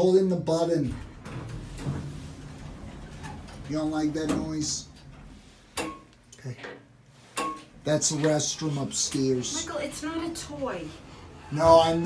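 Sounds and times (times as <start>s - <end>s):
elevator machinery hum: 0.5s - 5.8s, 7.7s - 12.0s
elevator door sliding open: 0.6s - 5.8s, 8.0s - 12.0s.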